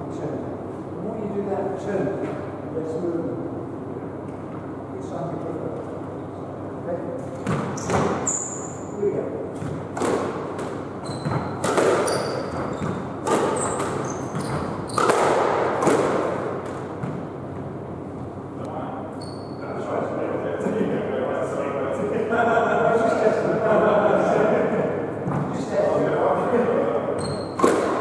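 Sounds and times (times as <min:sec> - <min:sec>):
squash ball struck by rackets: 0:07.4 - 0:08.3, 0:09.5 - 0:17.3, 0:27.4 - 0:28.0
shoes squeaking on wooden floor: 0:07.6 - 0:08.7, 0:11.0 - 0:15.1.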